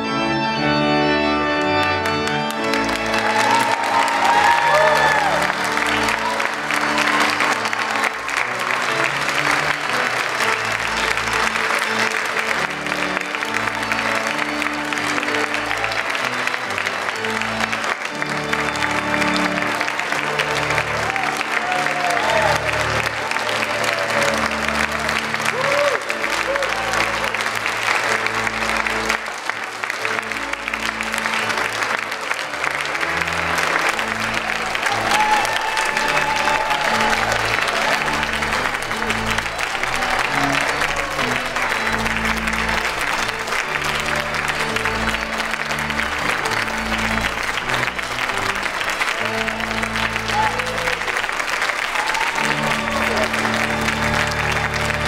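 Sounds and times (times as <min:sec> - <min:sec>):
audience clapping: 0:01.1 - 0:55.0.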